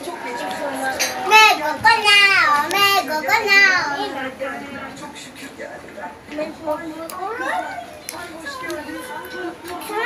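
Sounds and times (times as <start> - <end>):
young children chattering: 0.0 - 5.1, 6.3 - 10.0.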